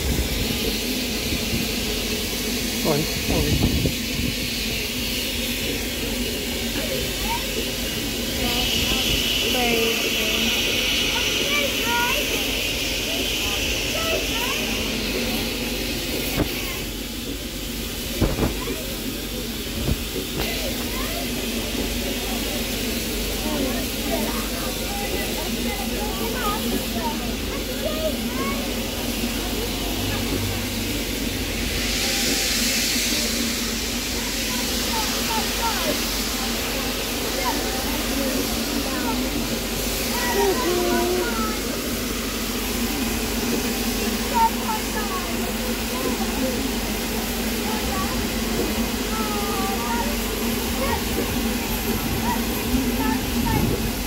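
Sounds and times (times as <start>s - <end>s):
people chattering: 0.0s - 54.0s
steam locomotive hissing steam: 0.0s - 54.0s.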